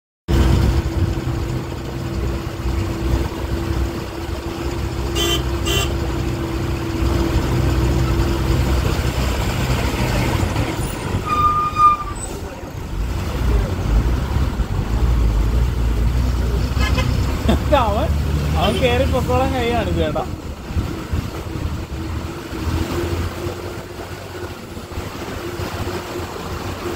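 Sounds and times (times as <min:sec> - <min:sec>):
bus engine rumble: 0:00.3 - 0:26.9
bus horn toots: 0:05.0 - 0:06.5, 0:11.1 - 0:12.3, 0:16.6 - 0:17.5.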